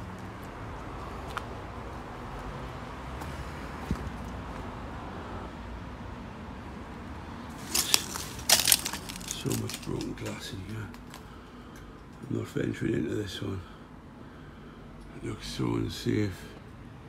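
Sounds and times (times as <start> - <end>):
low background noise: 0.0 - 17.0
broken glass crunching underfoot: 7.5 - 11.2.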